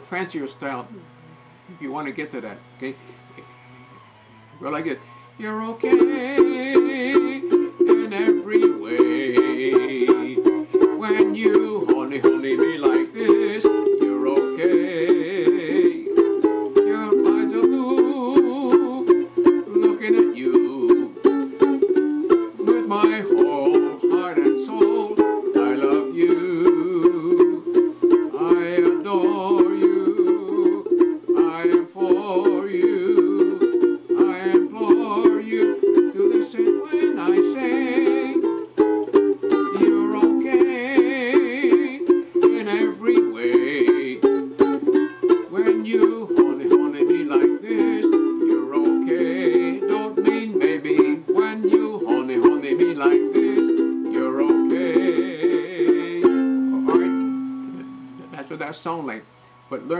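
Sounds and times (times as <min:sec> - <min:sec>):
ukulele strumming: 0:00.0 - 0:59.9.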